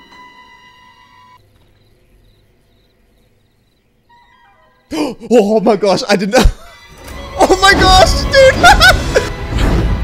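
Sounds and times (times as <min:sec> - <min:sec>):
held high note film score: 0:00.0 - 0:10.0.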